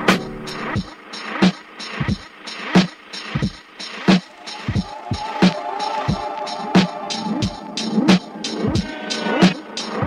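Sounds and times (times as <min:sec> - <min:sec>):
hi-hats: 0:00.0 - 0:10.0.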